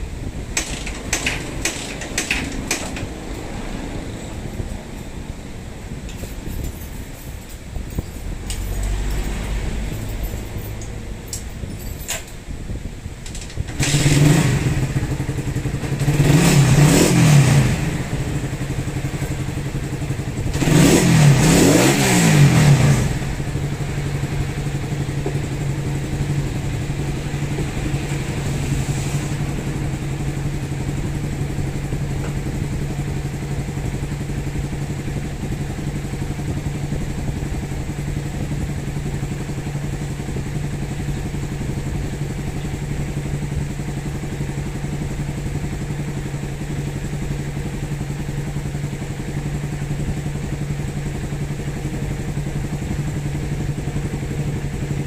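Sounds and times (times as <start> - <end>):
motorcycle engine revving and idling: 0.0 - 55.0.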